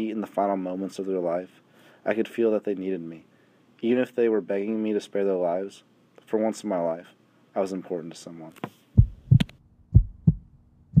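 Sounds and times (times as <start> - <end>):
heartbeat thumps: 9.0 - 11.0.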